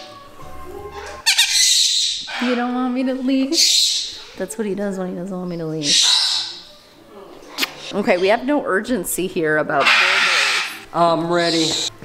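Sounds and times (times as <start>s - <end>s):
soft background music: 0.0s - 12.0s
parakeet harsh squawk: 1.2s - 2.6s, 3.6s - 4.3s, 5.8s - 6.7s, 9.8s - 11.9s.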